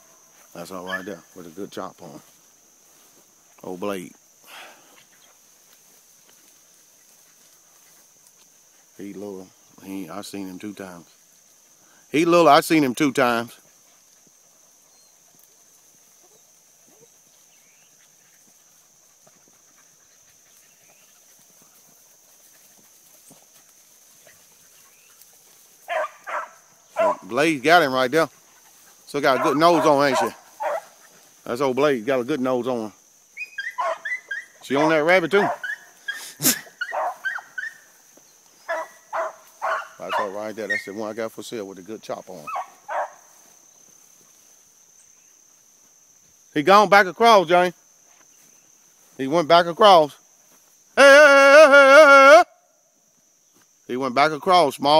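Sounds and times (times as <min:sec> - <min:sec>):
crickets chirping: 0:00.0 - 0:54.9
hound baying: 0:00.8 - 0:01.3, 0:25.8 - 0:27.4, 0:28.4 - 0:31.2, 0:33.4 - 0:38.0, 0:38.6 - 0:41.0, 0:42.4 - 0:43.2.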